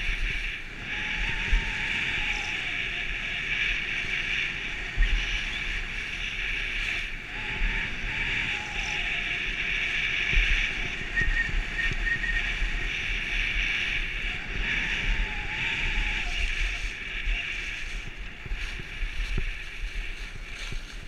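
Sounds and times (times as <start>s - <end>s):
skis hissing over snow: 0.0s - 21.0s
wind buffeting a microphone: 0.0s - 21.0s.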